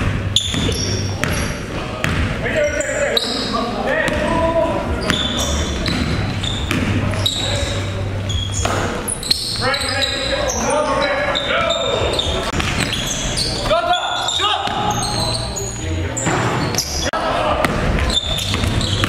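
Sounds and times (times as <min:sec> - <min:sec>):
players calling out: 0:00.3 - 0:19.0.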